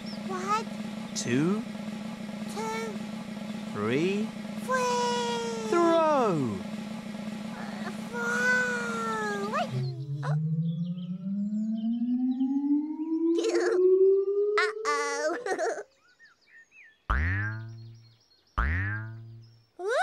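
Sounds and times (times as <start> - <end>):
rising whistle-like tone: 9.7 - 14.6
springy boing: 17.1 - 17.9, 18.6 - 19.4.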